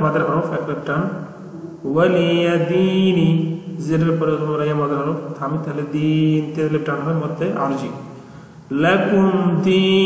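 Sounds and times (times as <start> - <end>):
man chanting melodically: 0.0 - 8.1, 8.7 - 10.0.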